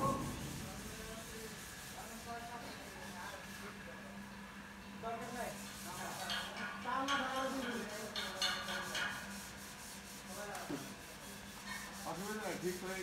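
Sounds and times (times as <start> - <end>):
hydraulic lift humming: 0.0 - 1.1.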